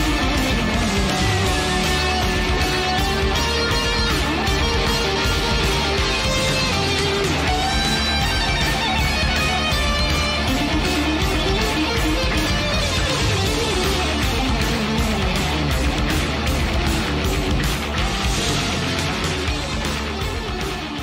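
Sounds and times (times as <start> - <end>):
heavy rock song: 0.0 - 21.0.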